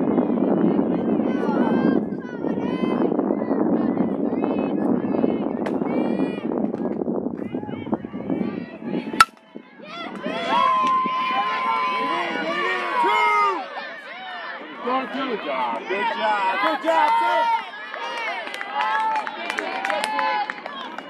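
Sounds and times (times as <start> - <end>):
hubbub of voices: 0.0 - 21.0
high-pitched shouts and cheers: 9.5 - 21.0.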